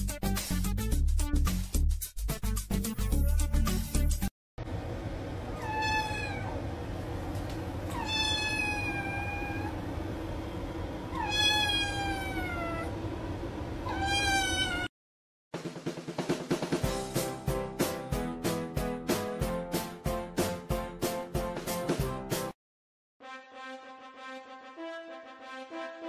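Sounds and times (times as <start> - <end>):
drum-heavy music: 0.0 - 4.3, 15.6 - 22.5
kitten meowing: 5.5 - 6.5, 7.9 - 9.7, 11.1 - 12.9, 13.8 - 14.9.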